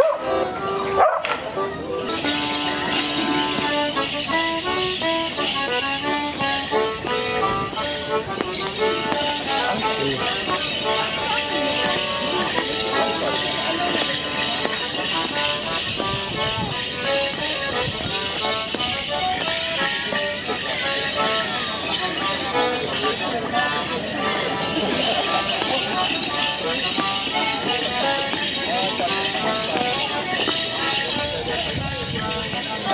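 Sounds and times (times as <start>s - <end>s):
accordion playing dance tune: 0.0s - 32.9s
jingling leg bells: 0.0s - 32.9s.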